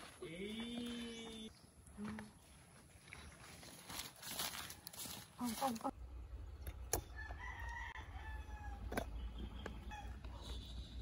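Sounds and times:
rooster crowing: 0:07.1 - 0:08.9.

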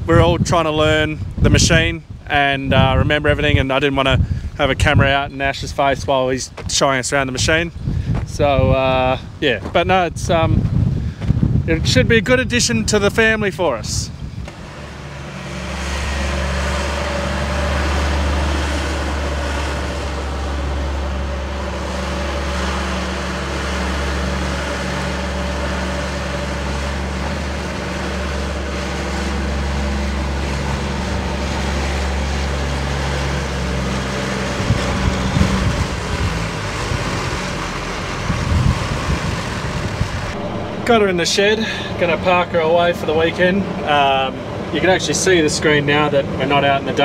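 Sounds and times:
diesel engine running: 0:13.9 - 0:47.0.

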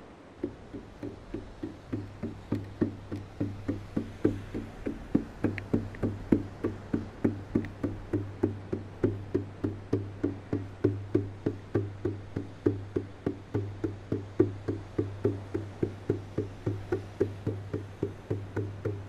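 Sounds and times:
percussion knocking strokes: 0:00.4 - 0:19.0.

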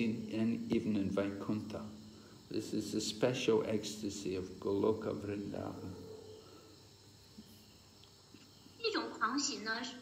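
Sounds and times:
woman speaking: 0:08.8 - 0:10.0.

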